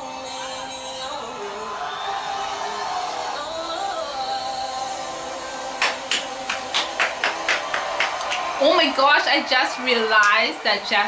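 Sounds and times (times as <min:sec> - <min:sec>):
backing music: 0:00.0 - 0:11.0
hands clapping: 0:05.8 - 0:11.0.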